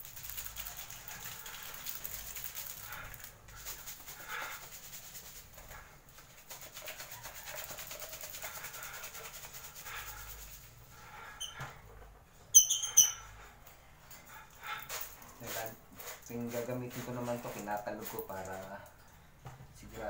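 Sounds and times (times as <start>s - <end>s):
powder shaken in plastic jar: 0.0s - 11.0s
birds chirping: 12.6s - 13.2s.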